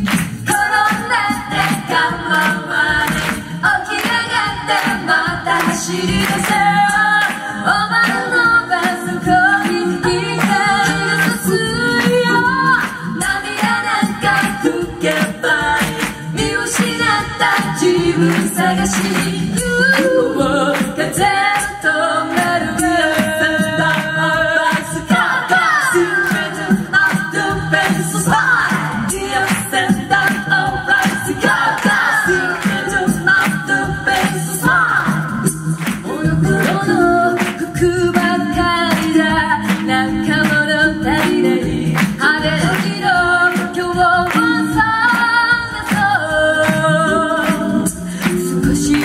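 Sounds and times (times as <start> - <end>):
steady beat: 0.0 - 49.0
women singing a cappella harmony: 0.0 - 49.0.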